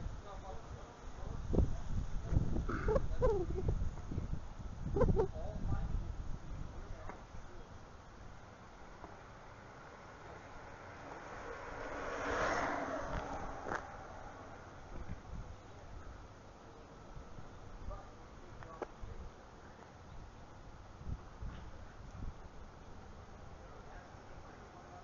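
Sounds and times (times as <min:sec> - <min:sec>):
wind rumbling on microphone: 0:00.0 - 0:07.6, 0:11.7 - 0:16.2, 0:20.1 - 0:23.0.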